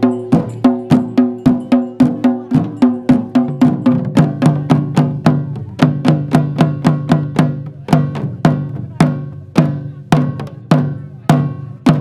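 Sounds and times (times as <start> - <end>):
drums beaten with sticks: 0.0 - 12.0.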